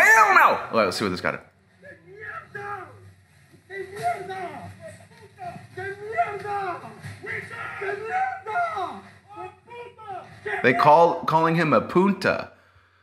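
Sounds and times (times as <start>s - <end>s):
people talking: 0.0s - 3.0s, 3.6s - 12.5s.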